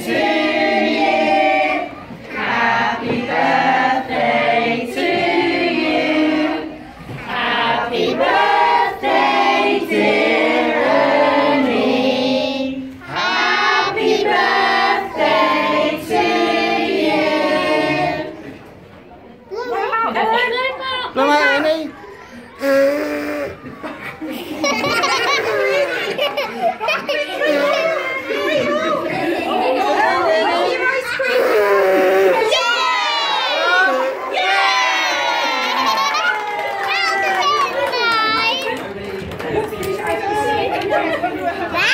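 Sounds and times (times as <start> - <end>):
group singing a celebration song: 0.0 - 18.9, 28.1 - 30.9
party chatter: 0.0 - 41.9.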